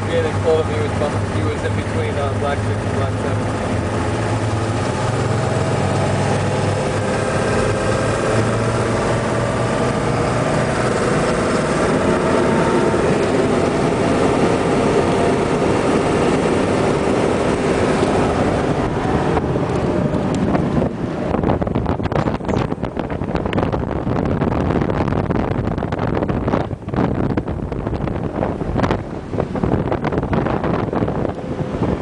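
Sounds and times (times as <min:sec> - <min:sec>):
low hum: 0:00.0 - 0:32.0
vehicle engine and road noise: 0:00.0 - 0:32.0.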